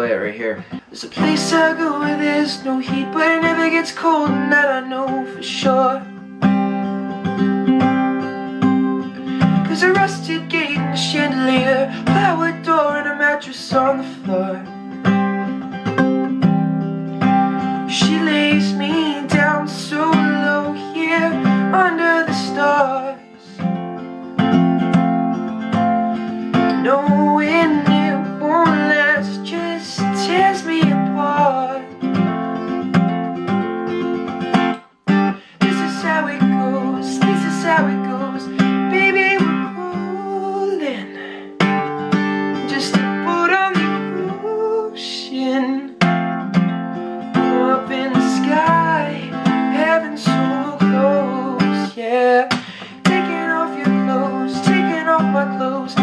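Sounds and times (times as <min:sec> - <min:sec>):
man singing: 0:00.0 - 0:15.5, 0:17.2 - 0:24.1, 0:25.9 - 0:32.4, 0:35.1 - 0:46.3, 0:47.2 - 0:56.0
acoustic guitar strummed and picked: 0:00.0 - 0:56.0.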